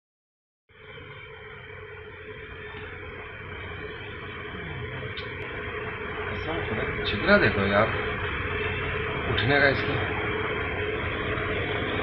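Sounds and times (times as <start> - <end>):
low hum: 0.7 - 12.0.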